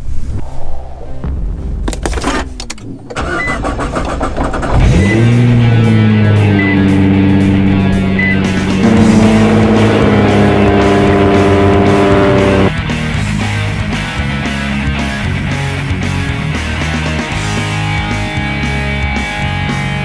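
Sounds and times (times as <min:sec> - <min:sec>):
car engine starting and running: 0:00.0 - 0:12.8
rock music: 0:04.8 - 0:20.0.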